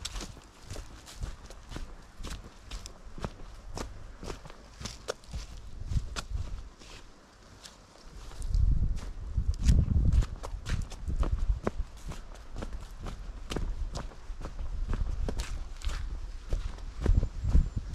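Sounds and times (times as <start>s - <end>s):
crackles underfoot: 0.0s - 17.6s
footsteps on dirt path: 0.0s - 17.9s
low microphone rumbles: 8.4s - 12.2s, 12.8s - 17.9s.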